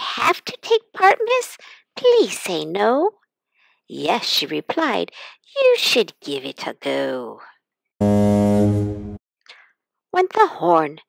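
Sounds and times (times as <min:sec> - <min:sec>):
low horn blast: 0:08.0 - 0:09.2.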